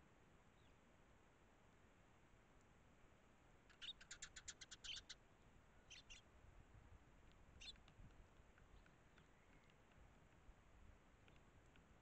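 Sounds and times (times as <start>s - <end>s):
sparrows chirping: 3.7s - 5.2s, 5.8s - 6.3s, 7.5s - 8.0s, 8.7s - 10.2s.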